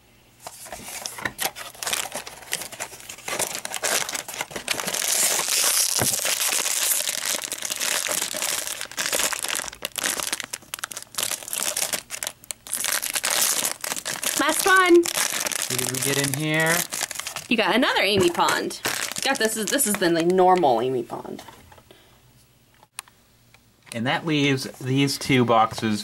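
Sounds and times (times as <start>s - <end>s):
foil bag crinkling: 0.4s - 20.6s
foil bag tearing: 0.5s - 17.6s, 18.8s - 20.1s.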